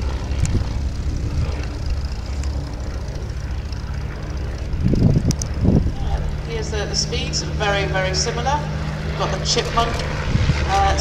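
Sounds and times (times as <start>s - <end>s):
propeller plane droning overhead: 0.0s - 11.0s.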